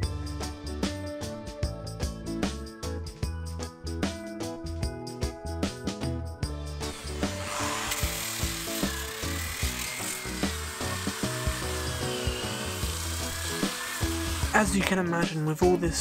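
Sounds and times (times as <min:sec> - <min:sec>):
background music: 0:00.0 - 0:16.0
orbital sander on wood: 0:06.8 - 0:14.9.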